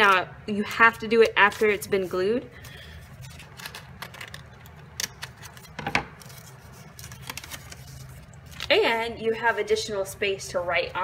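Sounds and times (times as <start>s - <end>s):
scissors cutting paper: 1.0s - 2.4s, 3.2s - 8.8s.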